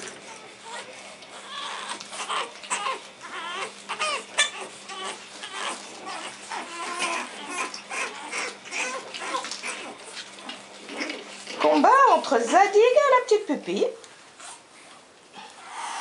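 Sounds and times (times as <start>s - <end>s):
puppies squealing and yelping: 0.1s - 12.1s, 15.6s - 16.0s.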